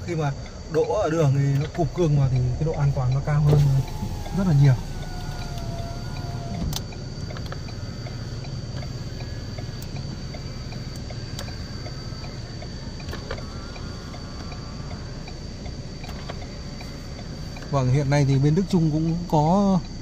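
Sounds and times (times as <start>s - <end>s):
diesel engine idling hum: 0.0s - 20.0s
mirror motor whining: 1.6s - 19.5s.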